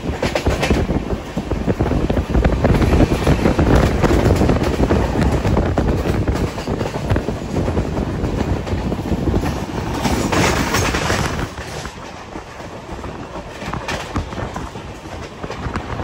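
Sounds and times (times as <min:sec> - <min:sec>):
train rumble: 0:00.0 - 0:16.0
train wheels clattering: 0:00.0 - 0:16.0.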